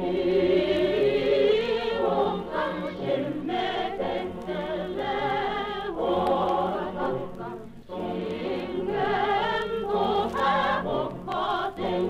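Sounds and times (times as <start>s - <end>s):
mixed choir singing: 0.0s - 12.0s.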